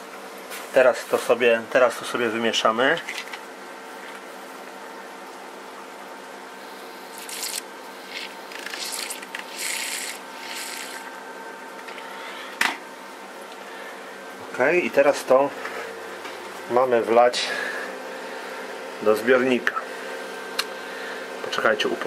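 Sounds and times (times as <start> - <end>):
metal stirrer scraping plastic cup: 7.2 - 11.1.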